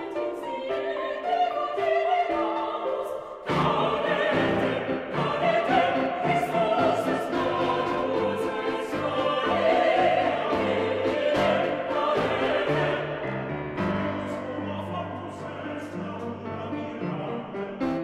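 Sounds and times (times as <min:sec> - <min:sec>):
choir singing: 0:00.0 - 0:18.0
grand piano: 0:00.0 - 0:18.0.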